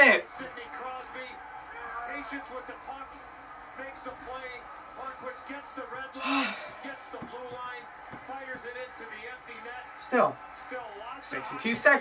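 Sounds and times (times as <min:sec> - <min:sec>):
commentator talking: 0:00.0 - 0:12.0.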